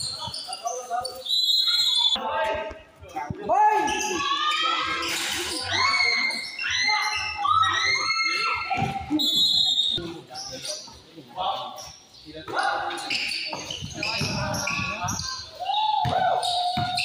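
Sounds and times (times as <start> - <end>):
shoe squeals on court: 0.0 - 2.2, 3.8 - 11.0, 11.7 - 17.0
basketball bounce: 13.8 - 14.9, 16.0 - 17.0.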